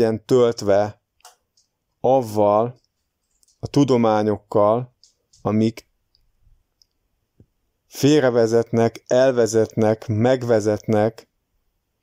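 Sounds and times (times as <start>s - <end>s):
person speaking: 0.0s - 1.0s, 1.6s - 5.9s, 7.9s - 11.4s.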